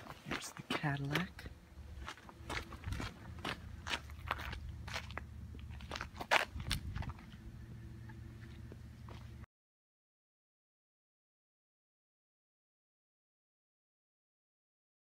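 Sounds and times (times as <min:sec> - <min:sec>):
footsteps crunching on gravel: 0:00.0 - 0:09.4
low steady hum: 0:00.0 - 0:09.5.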